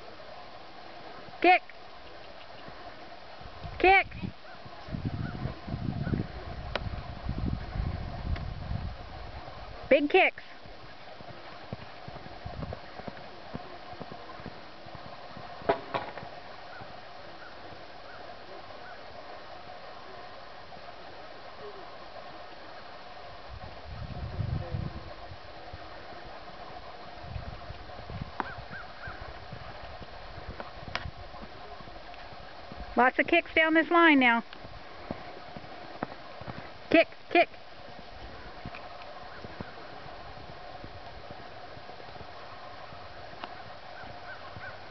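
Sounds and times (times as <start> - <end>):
outdoor background noise: 0.0 - 44.9
horse hoofbeats on sand: 10.5 - 19.8, 25.8 - 44.9.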